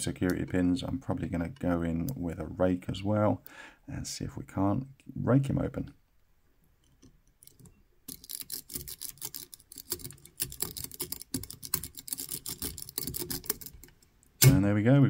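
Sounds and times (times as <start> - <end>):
lock pick clicking and scraping: 6.8 - 14.6.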